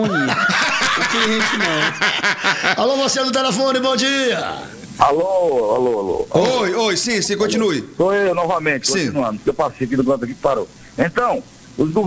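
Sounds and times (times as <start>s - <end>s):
men chuckling and laughing: 0.0s - 3.0s
men speaking: 0.0s - 12.0s.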